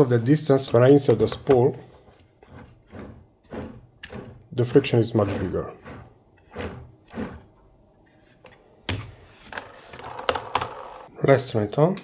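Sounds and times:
spool knocking and scraping: 0:00.3 - 0:11.1.

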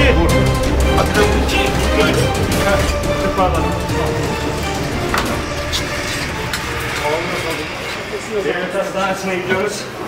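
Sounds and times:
background music: 0:00.0 - 0:10.0
indistinct talking: 0:00.0 - 0:10.0.

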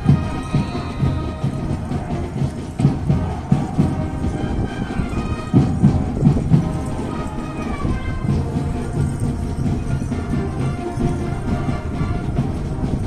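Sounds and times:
band music: 0:00.0 - 0:13.0
drum beats: 0:00.0 - 0:13.0.

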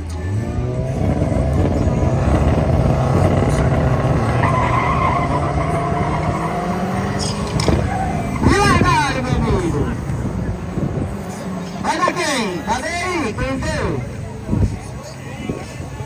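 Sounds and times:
race car engines revving: 0:00.0 - 0:16.0.

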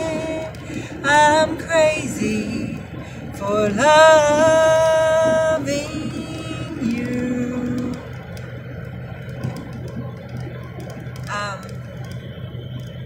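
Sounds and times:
car road and engine noise: 0:00.0 - 0:13.0.

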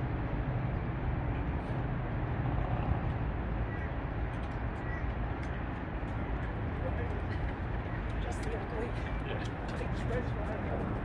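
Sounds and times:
road traffic drone: 0:00.0 - 0:11.0.

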